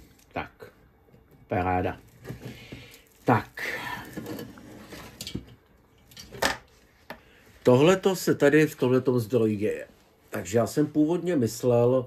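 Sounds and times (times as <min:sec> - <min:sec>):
cables rustling and knocking: 0:01.1 - 0:07.2.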